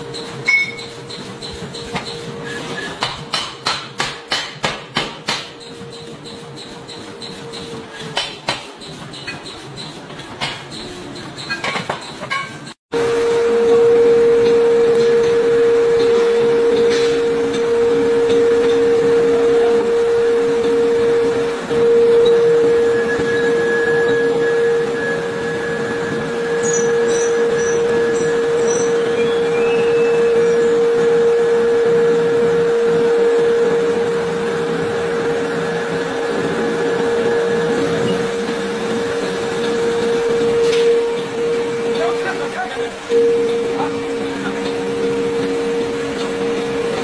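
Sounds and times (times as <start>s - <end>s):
machine hum: 12.9s - 47.0s.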